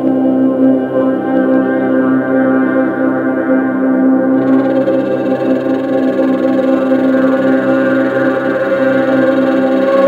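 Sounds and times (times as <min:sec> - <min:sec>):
synthesizer drone: 0:04.2 - 0:10.0.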